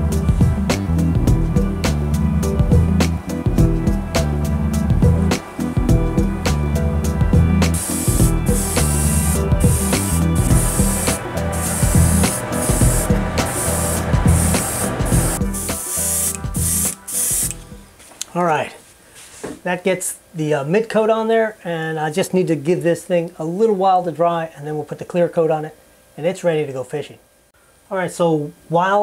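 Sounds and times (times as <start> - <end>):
background music with steady beat: 0.0 - 18.1
airbrush hissing bursts: 7.6 - 17.6.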